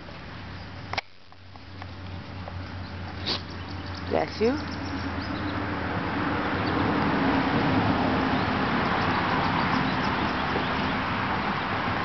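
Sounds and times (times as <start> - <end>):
dog snuffling through grass: 3.1 - 3.6
dog puffing through nose: 3.2 - 3.5.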